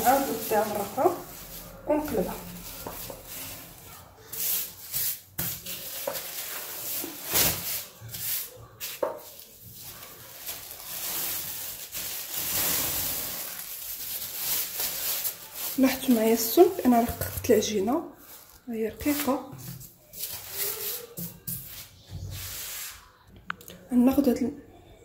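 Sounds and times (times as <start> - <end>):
plastic film crinkling: 0.0 - 21.8.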